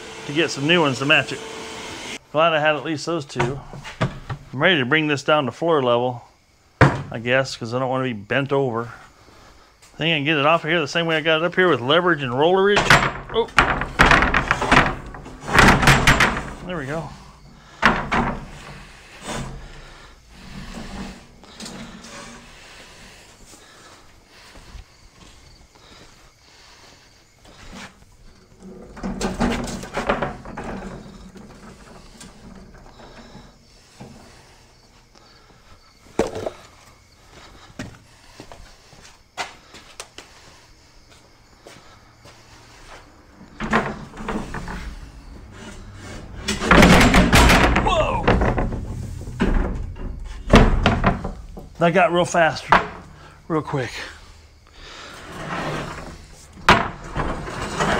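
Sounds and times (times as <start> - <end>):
knocks and scrapes of metal rack: 3.4 - 4.5, 11.2 - 23.8, 27.4 - 34.9, 42.2 - 57.9
loud metal clatter: 43.6 - 51.5.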